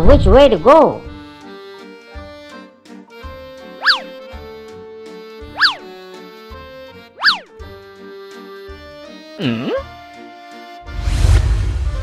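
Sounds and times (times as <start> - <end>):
bouncy cartoon music: 0.0 - 11.0
quick rising and falling swoop: 3.8 - 4.1, 7.2 - 7.5.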